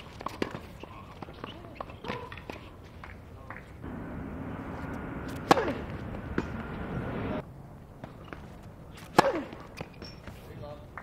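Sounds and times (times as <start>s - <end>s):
tennis ball struck with racket: 4.8s - 7.2s, 9.0s - 10.4s.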